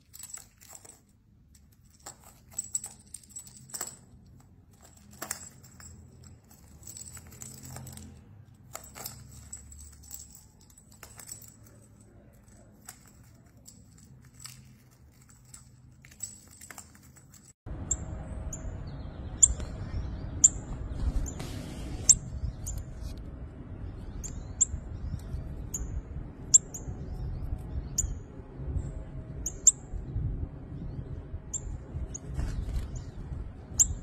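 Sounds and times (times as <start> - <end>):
low outdoor rumble: 0.0 - 34.0
high bird chirps: 17.8 - 21.4, 24.0 - 28.3.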